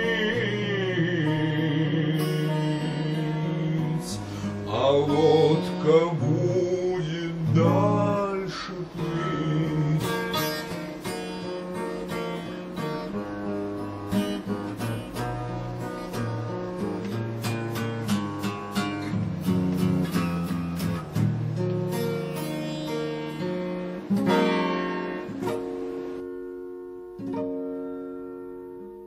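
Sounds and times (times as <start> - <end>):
acoustic guitar strumming and picking: 0.0 - 29.0.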